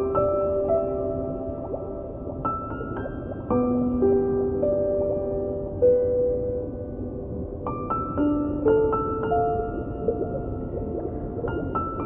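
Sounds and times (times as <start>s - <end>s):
slow relaxation piano music: 0.0s - 12.0s.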